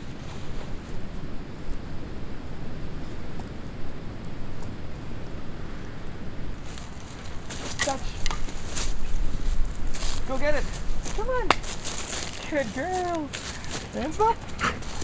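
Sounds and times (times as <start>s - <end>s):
wind rumble on microphone: 0.0s - 15.0s
footsteps crunching dry leaves: 6.6s - 15.0s.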